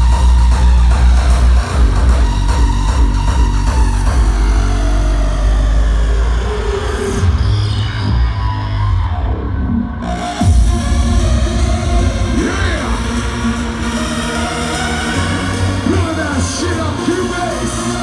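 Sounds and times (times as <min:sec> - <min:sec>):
hardstyle dance music: 0:00.0 - 0:18.0
heavy bass hit: 0:10.4 - 0:15.3.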